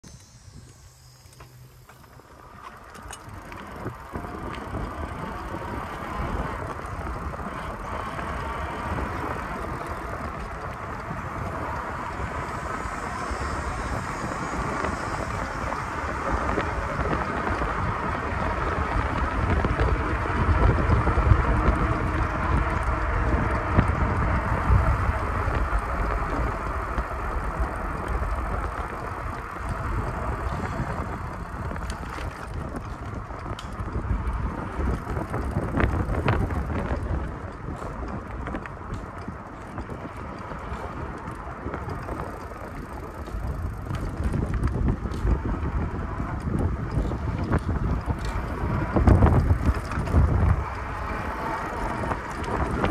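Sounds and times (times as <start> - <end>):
bicycle rumbling on concrete path: 0.0 - 52.9
wind buffeting microphone: 1.9 - 52.9.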